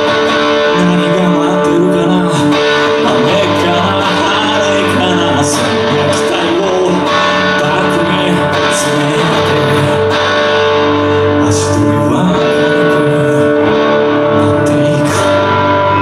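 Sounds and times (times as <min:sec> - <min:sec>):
bass guitar: 0:00.0 - 0:16.0
electric guitars: 0:00.0 - 0:16.0.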